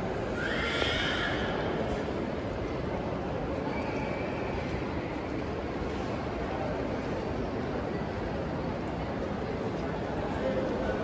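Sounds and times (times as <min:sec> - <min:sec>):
hubbub of busy indoor mall: 0:00.0 - 0:11.0.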